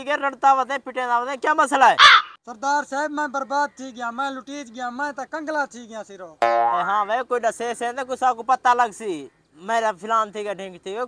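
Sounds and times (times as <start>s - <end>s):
person repeating quick syllables: 6.4s - 7.1s.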